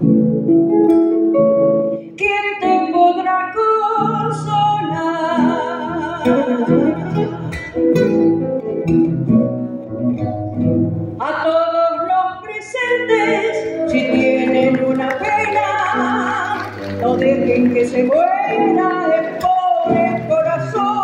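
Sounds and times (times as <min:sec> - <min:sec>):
acoustic guitars playing: 0:00.0 - 0:21.0.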